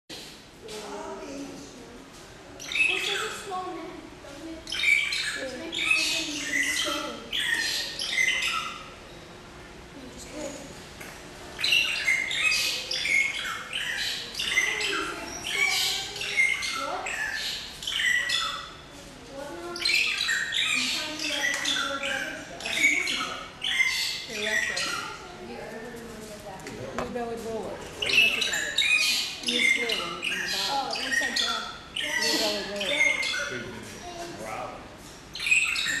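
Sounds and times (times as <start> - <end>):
birds chirping and squawking: 2.5 - 26.3, 27.6 - 36.0
faint people's voices: 11.6 - 36.0
people chattering: 11.9 - 17.4, 18.2 - 34.9.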